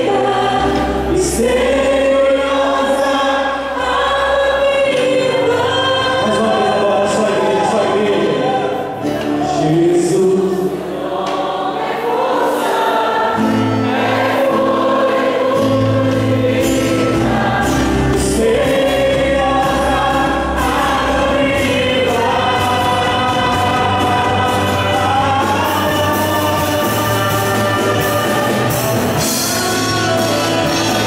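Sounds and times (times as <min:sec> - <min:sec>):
band playing worship music: 0:00.0 - 0:31.0
voices singing together: 0:00.0 - 0:31.0.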